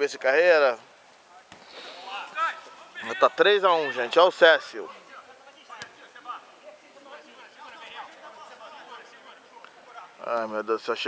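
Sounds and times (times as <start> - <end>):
faint shouts of players: 1.4 - 10.2.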